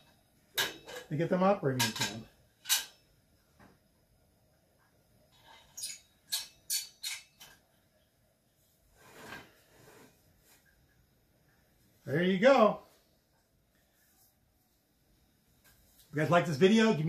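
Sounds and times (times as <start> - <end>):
soft rustle: 12.8 - 16.4.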